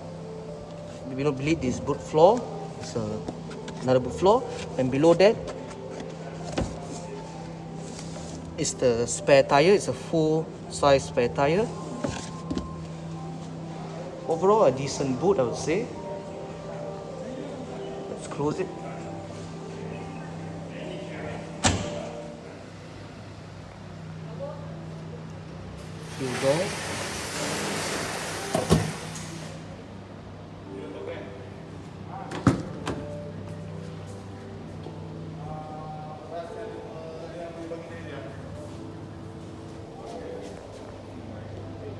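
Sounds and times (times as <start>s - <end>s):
car door latch click: 21.6s - 22.1s.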